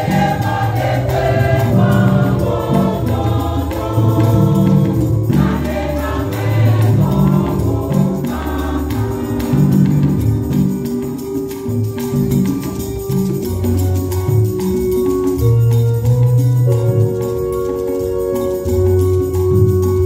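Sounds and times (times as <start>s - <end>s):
women's choir singing: 0.0s - 10.3s
percussion beat: 0.0s - 20.0s.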